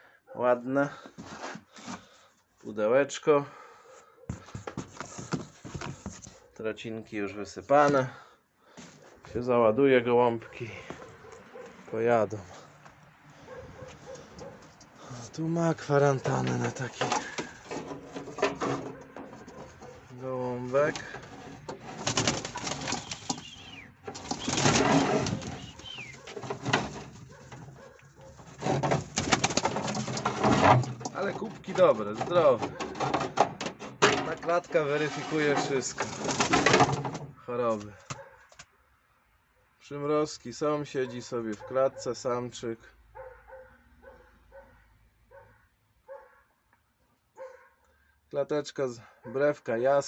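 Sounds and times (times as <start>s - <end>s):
dog barking faintly: 10.4s - 12.0s, 13.4s - 15.2s, 41.0s - 42.2s, 43.2s - 46.5s, 47.4s - 47.8s.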